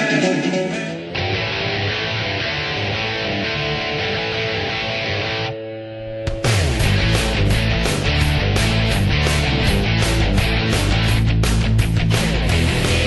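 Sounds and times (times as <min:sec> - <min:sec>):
electric guitar music: 0:00.0 - 0:13.0.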